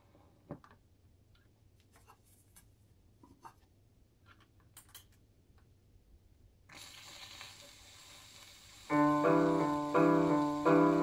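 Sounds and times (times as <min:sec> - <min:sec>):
record surface hiss and crackle: 0:00.0 - 0:11.0
piano music: 0:08.9 - 0:11.0.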